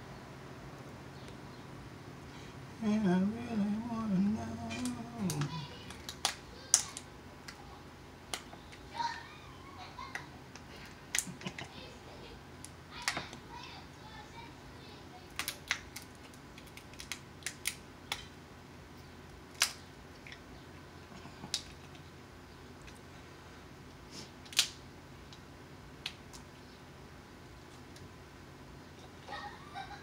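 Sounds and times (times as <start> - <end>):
chewing clicks and smacks: 15.3 - 18.3, 21.2 - 22.1.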